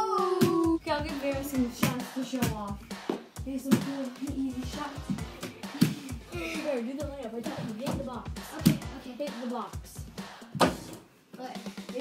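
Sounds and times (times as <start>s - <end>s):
girl's voice: 0.0s - 2.8s, 3.4s - 10.0s
background music with a beat: 0.0s - 12.0s.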